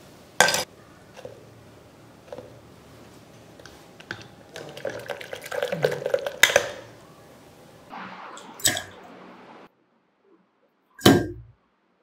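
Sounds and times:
milk swirling: 2.2s - 7.4s.

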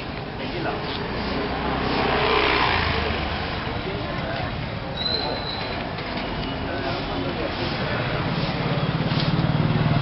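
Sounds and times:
people's voices: 0.2s - 10.0s
vehicle engine passing close: 1.1s - 4.2s.

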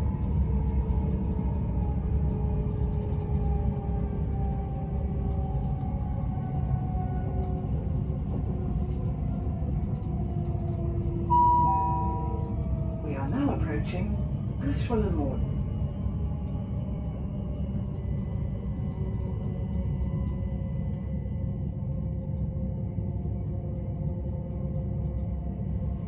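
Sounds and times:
train wheels rumbling on track: 0.0s - 22.5s
electric traction whine: 11.2s - 14.0s
two-note descending chime: 11.3s - 12.5s.

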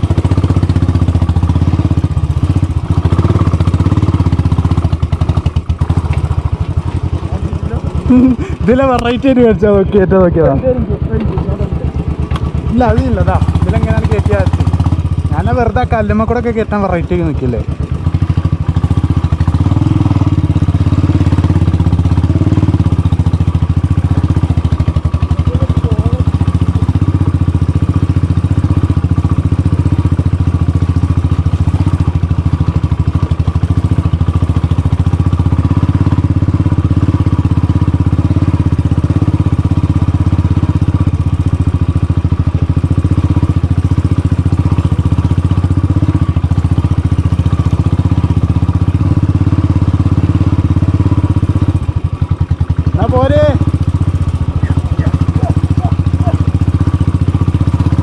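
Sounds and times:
motorcycle engine running steadily: 0.0s - 58.0s.

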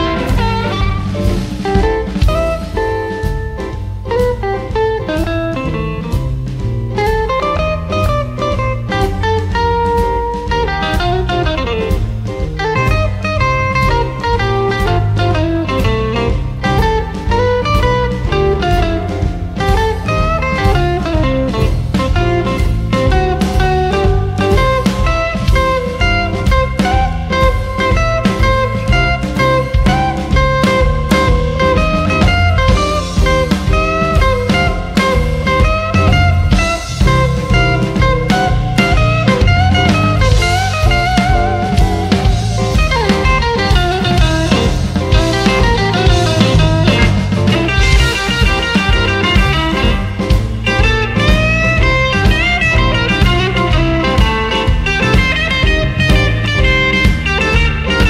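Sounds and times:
bass guitar: 0.0s - 58.0s
drums: 0.0s - 58.0s
electric blues band playing: 0.0s - 58.0s
lead guitar line: 0.0s - 58.0s.

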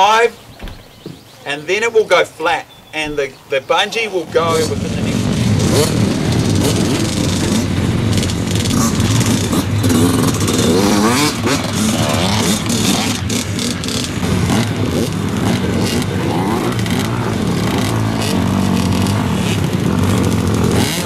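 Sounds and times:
motocross bikes idling and revving: 0.0s - 21.0s.

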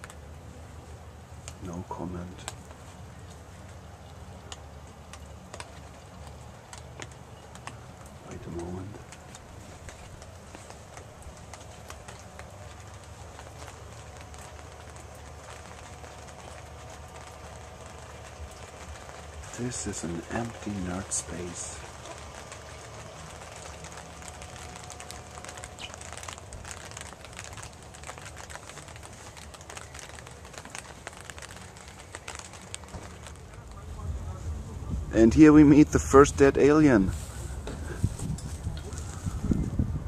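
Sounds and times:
low hum: 0.0s - 40.0s.

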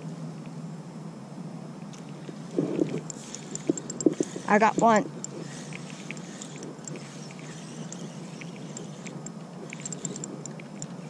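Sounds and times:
faint small ticks: 1.8s - 11.0s
fishing reel whirring: 2.7s - 11.0s.

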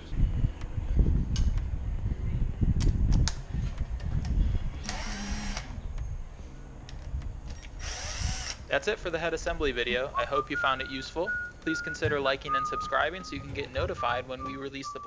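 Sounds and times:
cordless drill whine: 4.8s - 5.7s, 7.6s - 8.6s.

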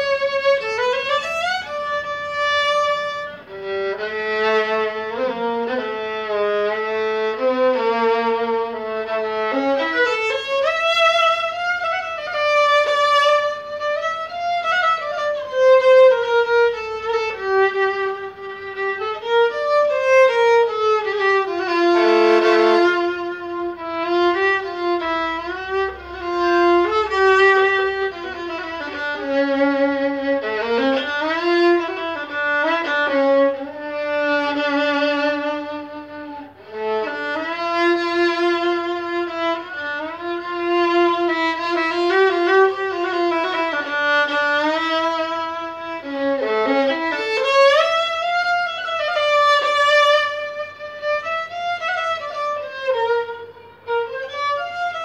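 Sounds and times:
solo violin melody: 0.0s - 55.0s.

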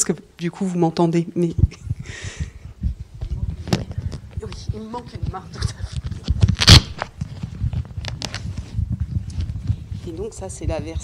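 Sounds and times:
microphone handling noise: 1.5s - 11.0s.

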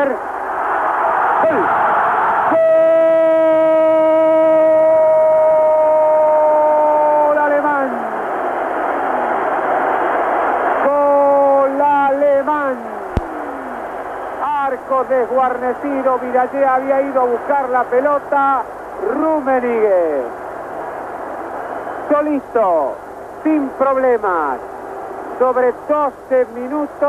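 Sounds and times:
stadium crowd noise: 0.0s - 27.0s
commentator crying goal: 2.5s - 8.2s.

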